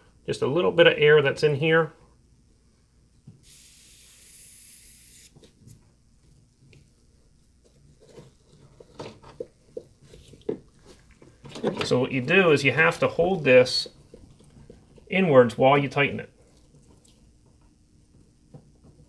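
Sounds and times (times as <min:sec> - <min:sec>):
refrigerant hissing from fitting: 0:03.4 - 0:05.3.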